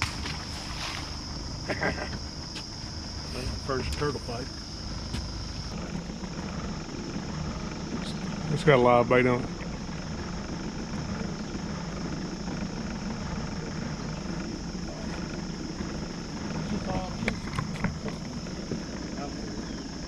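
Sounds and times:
high-pitched insect drone: 0:00.0 - 0:20.0
low hum: 0:00.0 - 0:20.0.

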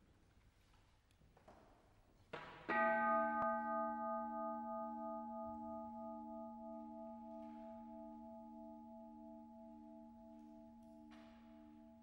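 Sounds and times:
temple bowl ringing: 0:02.7 - 0:12.0.

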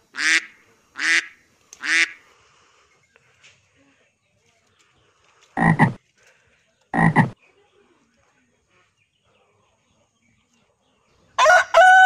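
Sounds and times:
double-pulsed animal calls: 0:05.6 - 0:06.0, 0:07.0 - 0:07.4.

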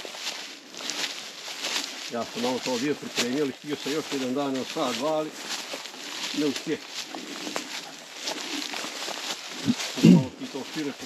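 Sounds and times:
footsteps on leaves and twigs: 0:00.0 - 0:11.0.

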